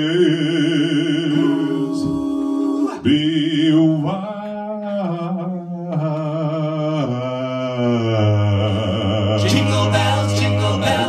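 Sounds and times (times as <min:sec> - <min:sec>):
a cappella group singing in harmony: 0:00.0 - 0:11.0.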